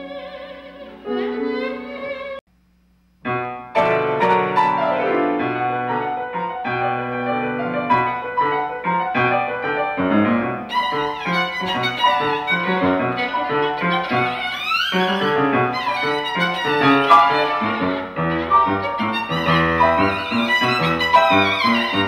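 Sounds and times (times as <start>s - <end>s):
piano accompaniment: 0.0s - 2.4s, 3.2s - 22.0s
solo violin: 0.0s - 2.4s, 10.6s - 22.0s.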